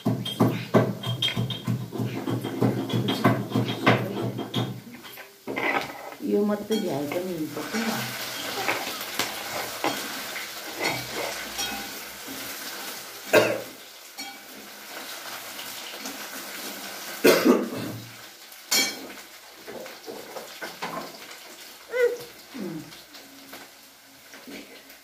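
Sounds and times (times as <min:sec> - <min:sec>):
clatter of small hard objects: 0:07.0 - 0:12.5.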